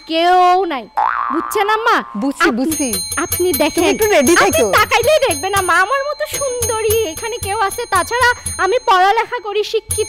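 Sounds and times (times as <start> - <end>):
woman talking: 0.1 - 10.0.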